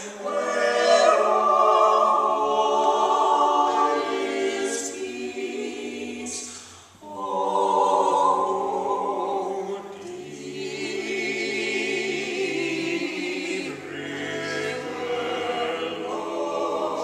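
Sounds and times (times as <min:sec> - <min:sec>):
vocal quartet singing in harmony: 0:00.0 - 0:17.0.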